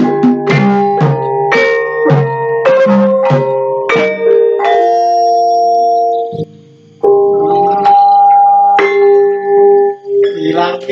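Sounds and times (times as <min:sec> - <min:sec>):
gamelan instruments ringing: 0:00.0 - 0:10.7.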